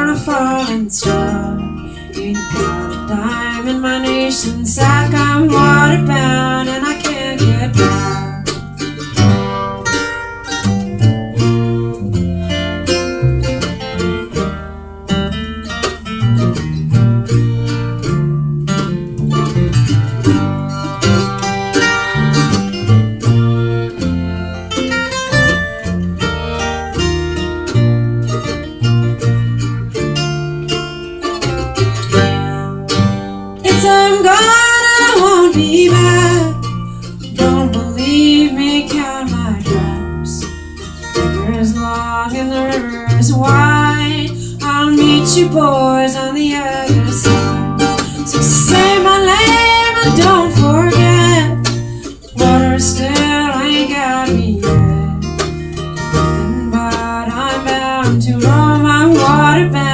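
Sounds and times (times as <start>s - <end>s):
fiddle bowing: 0.0s - 59.9s
mandolin: 0.0s - 59.9s
strummed acoustic guitar: 0.0s - 59.9s
upright bass: 0.0s - 59.9s.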